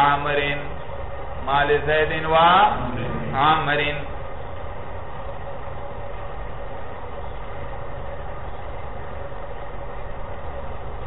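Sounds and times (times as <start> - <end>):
faint constant hum: 0.0 - 11.0
steady low rumble: 0.9 - 6.5.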